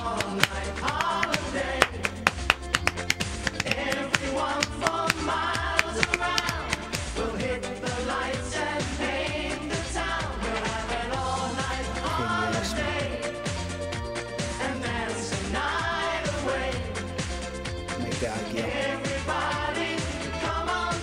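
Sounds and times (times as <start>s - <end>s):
steady drum beat: 0.0s - 13.4s
band backing: 0.0s - 21.0s
man singing pop song: 11.4s - 13.4s, 17.9s - 19.5s.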